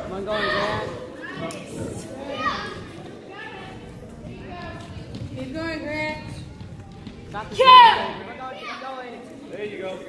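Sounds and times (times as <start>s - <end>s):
children talking and calling out: 0.0s - 9.2s.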